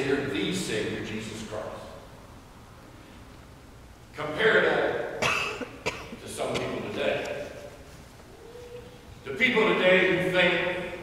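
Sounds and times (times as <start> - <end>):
person clearing throat: 5.2 - 6.9
person coughing: 5.2 - 6.9.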